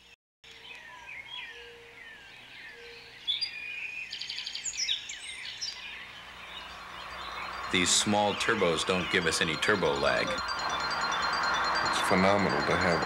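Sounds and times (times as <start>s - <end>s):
songbirds chirping: 0.0s - 13.0s
rapid trilling birdsong: 0.5s - 13.0s.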